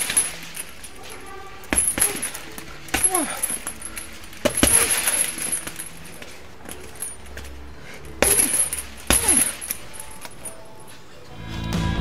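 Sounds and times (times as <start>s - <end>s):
metallic jingle of chains: 0.0s - 11.0s
punches hitting heavy bag: 1.6s - 5.9s, 8.2s - 9.8s.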